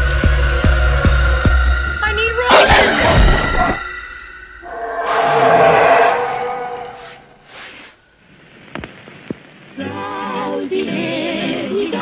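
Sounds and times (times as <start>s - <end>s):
rushing swell with held tone: 4.6s - 7.7s.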